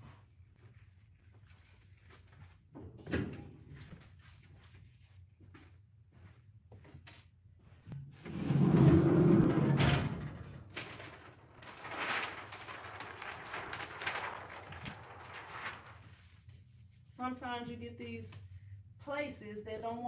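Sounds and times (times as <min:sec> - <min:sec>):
heat press table sliding rumble: 0:08.2 - 0:10.7
paper crinkling: 0:10.6 - 0:16.7
shirt being handled: 0:10.7 - 0:17.0.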